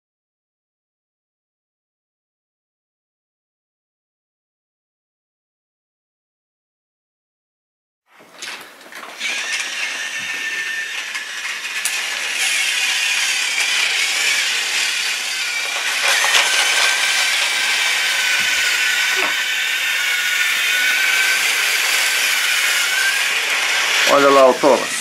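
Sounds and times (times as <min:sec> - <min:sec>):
toy train motors whirring: 0:09.0 - 0:25.0.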